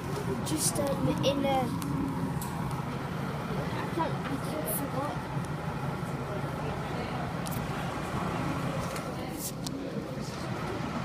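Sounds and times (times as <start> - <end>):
low ambient rumble: 0.0 - 11.0.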